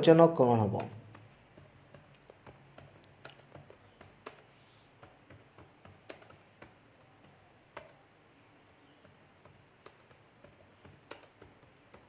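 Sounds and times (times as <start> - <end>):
faint low hum: 0.0 - 12.0
faint irregular clicking: 0.8 - 8.0, 8.7 - 12.0.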